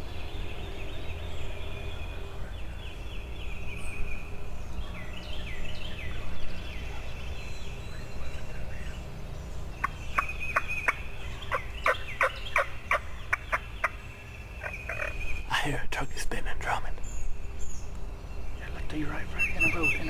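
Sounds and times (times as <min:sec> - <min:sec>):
sharp turkey calls: 0:09.8 - 0:14.0, 0:14.6 - 0:15.2
turkey gobbling: 0:09.8 - 0:14.0, 0:14.6 - 0:15.2.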